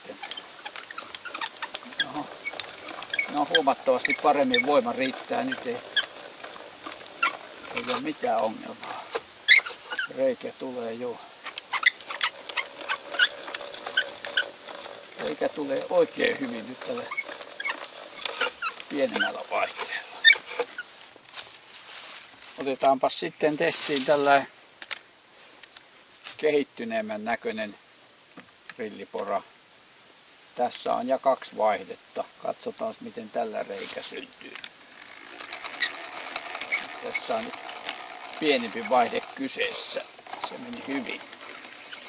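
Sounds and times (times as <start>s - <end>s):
hand crank drill boring into wood: 0.0s - 21.6s, 33.5s - 42.0s.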